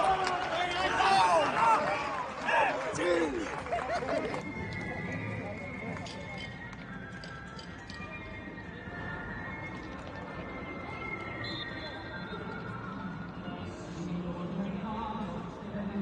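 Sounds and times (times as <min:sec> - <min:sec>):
footballers shouting: 0:00.0 - 0:03.9.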